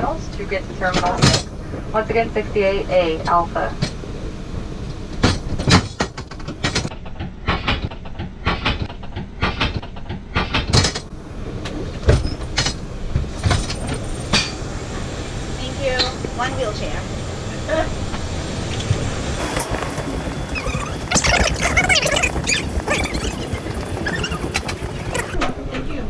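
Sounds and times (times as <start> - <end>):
low hum of airliner cabin: 0.0 - 26.0
knocks clicks and clatters: 5.1 - 14.6, 18.7 - 25.5.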